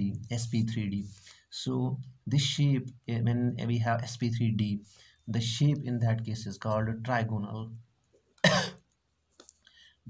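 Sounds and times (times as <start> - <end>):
man coughing: 8.4 - 8.8.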